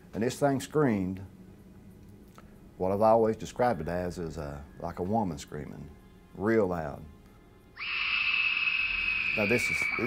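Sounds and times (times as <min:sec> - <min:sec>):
high scream-like shriek: 0:07.8 - 0:10.0.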